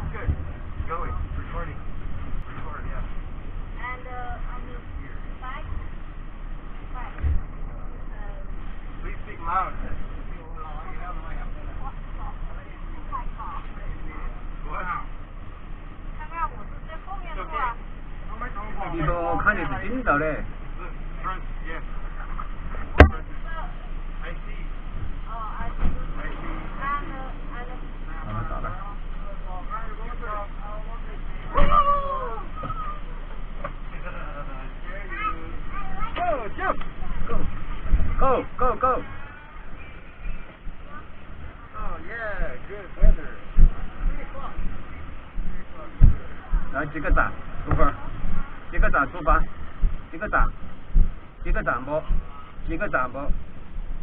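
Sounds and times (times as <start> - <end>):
passengers chattering: 0.0 - 54.0
van engine rumble and road noise: 0.0 - 54.0
voices talking indistinctly: 0.0 - 54.0
thump: 22.9 - 23.2, 31.6 - 31.8.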